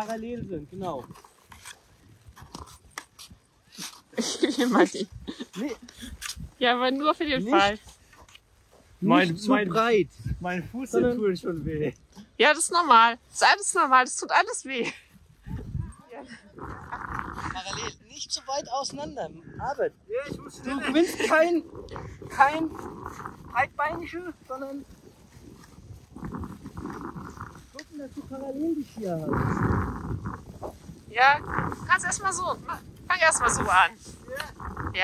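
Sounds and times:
dog rough vocalization: 16.5s - 18.0s, 21.1s - 23.8s.

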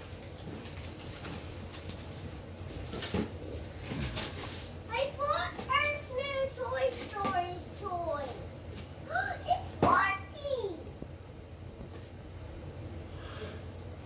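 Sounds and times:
wrapping paper crinkling and tearing: 0.0s - 4.8s.

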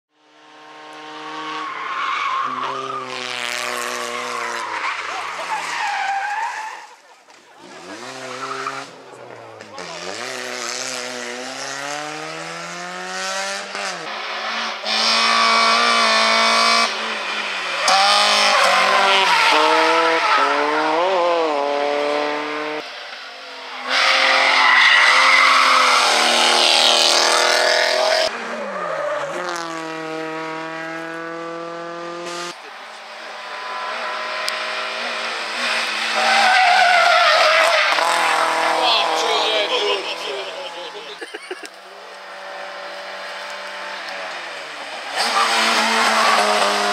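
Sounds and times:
rally car engines revving: 0.2s - 46.9s
tyres squealing: 4.6s - 7.1s, 36.1s - 41.6s.

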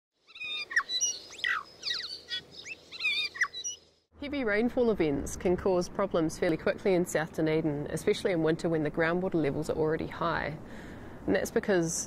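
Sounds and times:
birds chirping and whistling: 0.3s - 3.9s.

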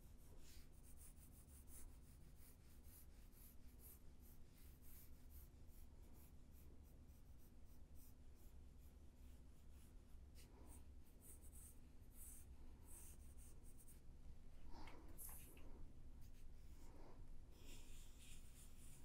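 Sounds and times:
pencil scratching on paper: 0.0s - 14.0s, 17.5s - 19.0s.

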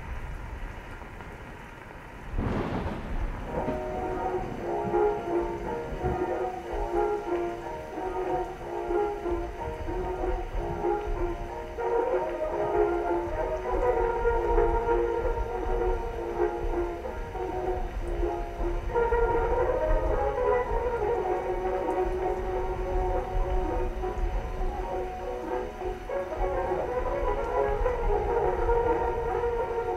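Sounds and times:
gramophone record music: 2.4s - 29.9s.

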